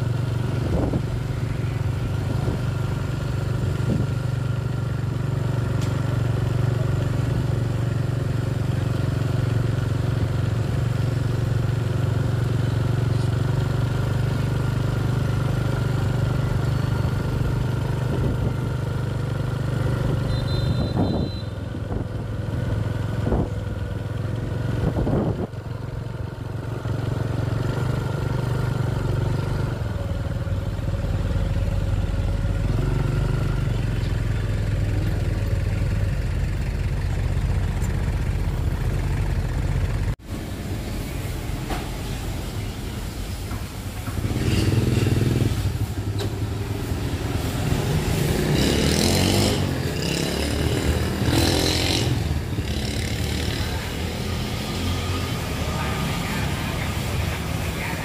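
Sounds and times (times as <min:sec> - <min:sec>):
motorbike engine running: 0:00.0 - 0:40.1, 0:44.1 - 0:54.9
motorbikes passing: 0:00.0 - 0:58.0
short high beep: 0:20.2 - 0:21.6.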